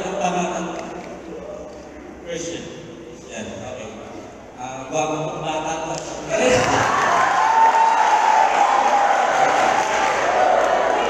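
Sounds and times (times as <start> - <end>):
man speaking over a microphone: 0.0 - 6.9
audience cheering loudly: 6.4 - 11.0.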